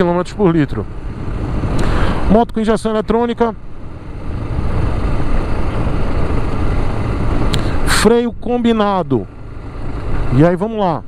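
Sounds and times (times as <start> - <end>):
motorcycle engine: 0.0 - 11.0.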